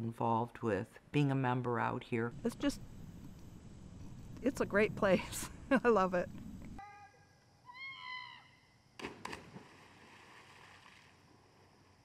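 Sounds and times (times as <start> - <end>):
high-pitched shout: 6.8 - 8.4
children splashing into water: 9.0 - 11.3.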